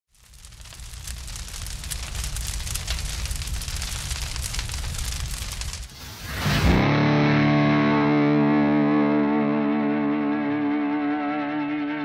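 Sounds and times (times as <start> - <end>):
fire crackling: 0.1 - 7.0.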